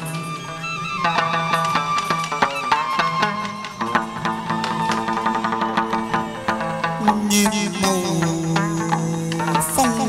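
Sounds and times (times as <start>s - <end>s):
plucked lute melody: 0.0s - 10.0s.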